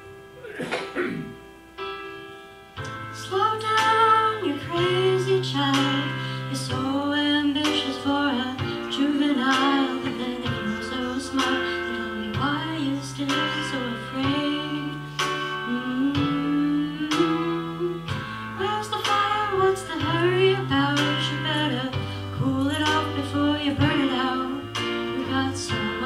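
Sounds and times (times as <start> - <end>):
instrumental accompaniment: 0.0 - 26.0
woman singing with vibrato: 3.2 - 26.0.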